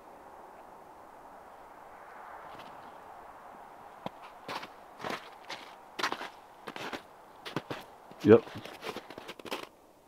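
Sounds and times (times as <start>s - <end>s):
outdoor background hiss: 0.0s - 8.9s, 9.7s - 10.0s.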